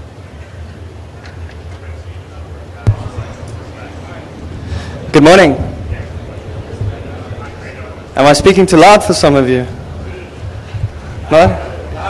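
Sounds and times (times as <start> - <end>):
low electrical hum: 0.0 - 12.0
thump through microphone: 2.8 - 3.6.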